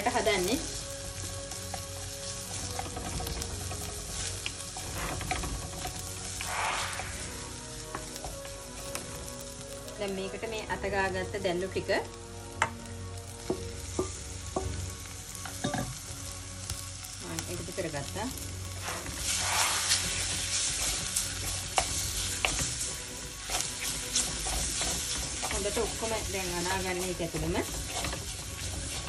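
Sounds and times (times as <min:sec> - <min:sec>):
squid sizzling in hot oil: 0:00.0 - 0:29.0
wooden spoon knocking on pan: 0:02.5 - 0:06.1, 0:12.6 - 0:12.8, 0:13.4 - 0:16.0.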